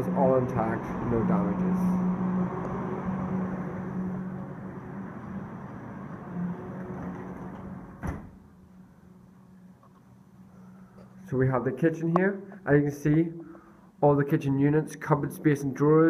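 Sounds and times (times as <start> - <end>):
outdoor city noise: 0.0 - 12.7
sliding door shutting: 2.6 - 8.5.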